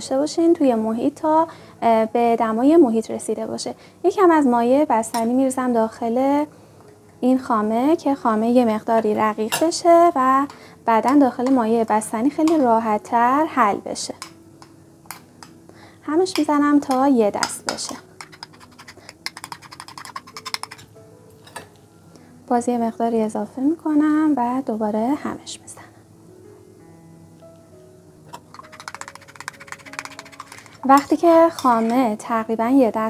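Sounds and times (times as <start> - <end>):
soft background music: 0.0 - 33.0
utensil clicking against bowl: 16.3 - 20.9, 28.4 - 31.9.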